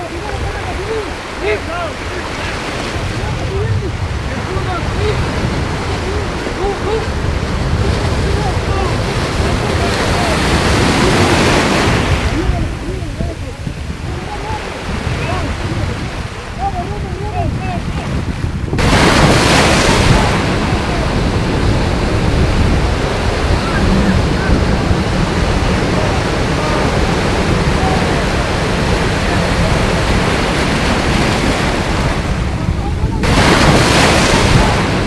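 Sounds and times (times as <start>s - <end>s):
surf breaking and washing: 0.0s - 35.0s
wind on microphone: 0.0s - 35.0s.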